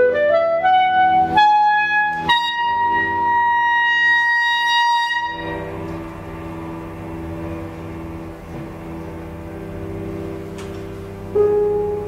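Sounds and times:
clarinet high note: 0.0s - 8.3s
cello and clarinet low notes: 0.0s - 12.0s
piano: 0.0s - 12.0s.

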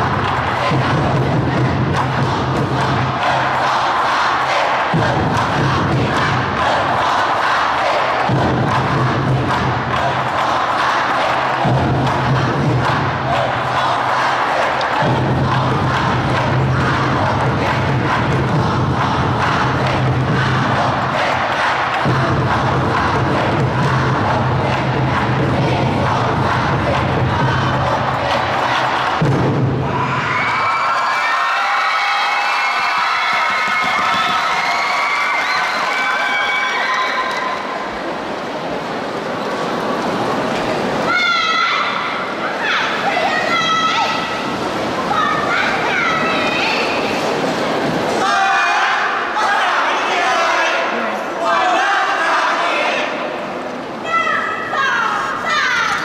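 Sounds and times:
crowd chanting and shouting: 0.0s - 56.0s.

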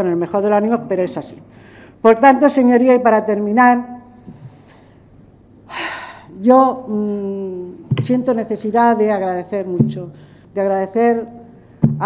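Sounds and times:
woman sharp breath in: 1.5s - 2.0s.

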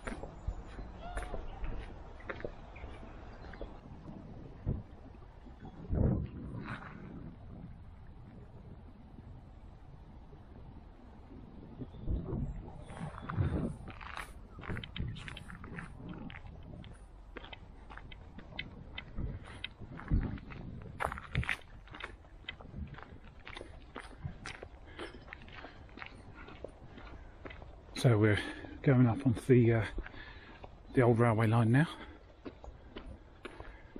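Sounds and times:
footsteps crunching on path: 0.0s - 7.3s, 12.6s - 33.9s.

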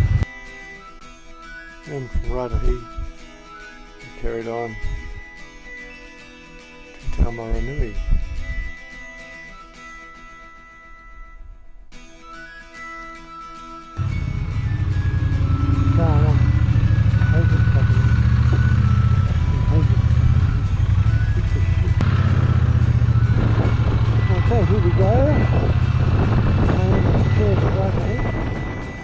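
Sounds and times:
motorcycle engine low rumble: 0.0s - 0.2s, 14.0s - 29.0s.

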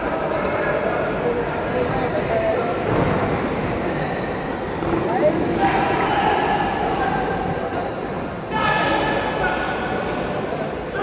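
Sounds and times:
echoing indoor hubbub: 0.0s - 11.0s.

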